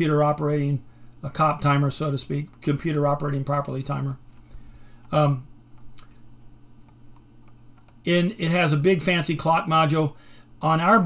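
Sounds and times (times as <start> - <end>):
low steady hum: 0.0 - 11.0
faint irregular clicks: 3.6 - 6.2, 6.8 - 8.0.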